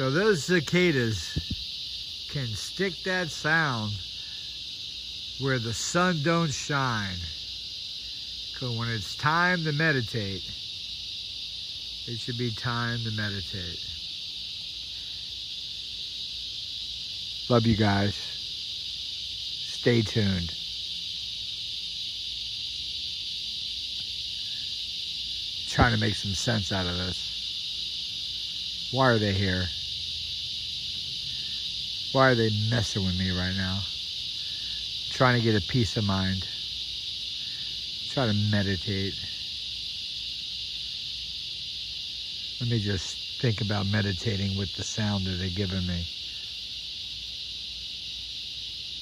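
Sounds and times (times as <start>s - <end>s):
cicadas droning: 0.0s - 49.0s.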